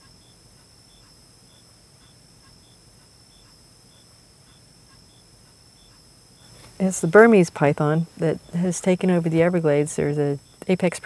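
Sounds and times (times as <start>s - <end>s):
short high insect chirps: 0.0s - 6.9s
insect drone: 0.0s - 11.0s.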